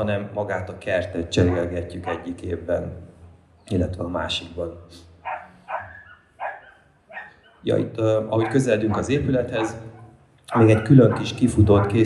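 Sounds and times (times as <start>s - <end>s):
dog barking: 1.4s - 2.3s, 5.2s - 7.7s, 8.4s - 12.0s.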